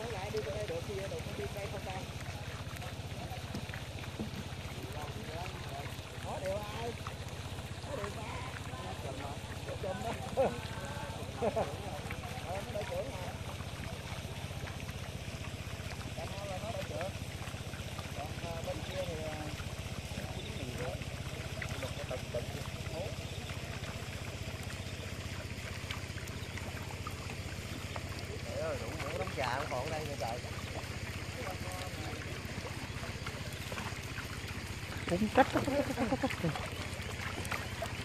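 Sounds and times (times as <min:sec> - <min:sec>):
faint water wash: 0:00.0 - 0:38.0
small engine chugging: 0:00.0 - 0:38.0.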